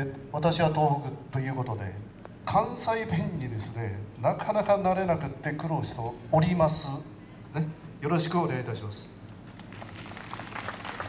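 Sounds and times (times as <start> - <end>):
audience applauding: 9.5 - 11.0.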